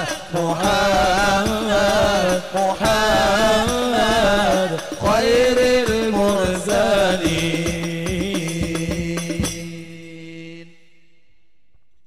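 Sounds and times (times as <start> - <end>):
men chanting a devotional song: 0.0 - 11.2.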